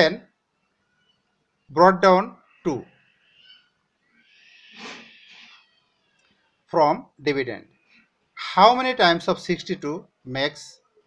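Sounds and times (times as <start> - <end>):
faint drawn-out animal cry: 2.4 - 6.2.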